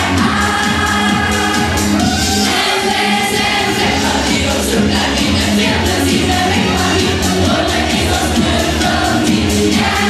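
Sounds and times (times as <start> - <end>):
group singing together: 0.0 - 10.0.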